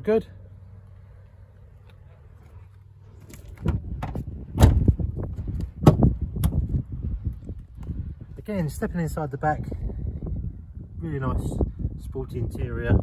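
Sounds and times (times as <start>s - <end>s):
car door clicks and knocks: 3.6s - 5.0s, 5.8s - 6.6s.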